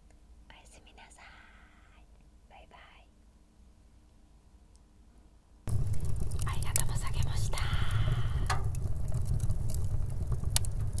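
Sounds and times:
soft hiss: 0:00.0 - 0:11.0
fire crackling and popping: 0:05.6 - 0:11.0
wood fire rumbling: 0:05.7 - 0:11.0.

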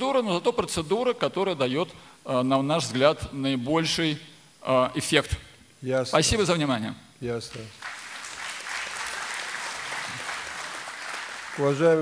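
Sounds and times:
audience applauding: 0:07.8 - 0:12.0.

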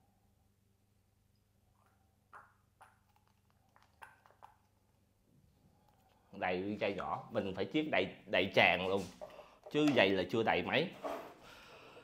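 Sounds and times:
low steady hum: 0:00.0 - 0:08.4
syringe squirts and clicks: 0:01.8 - 0:04.9.

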